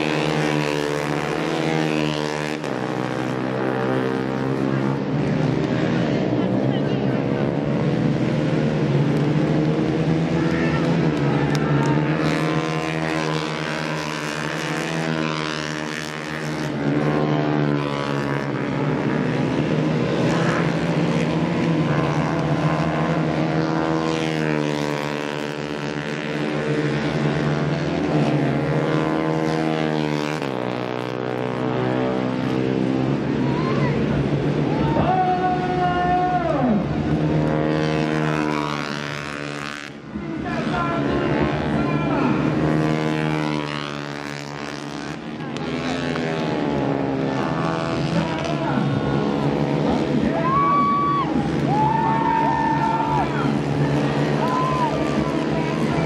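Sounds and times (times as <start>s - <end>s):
racing motorcycle engines revving: 0.0s - 56.0s.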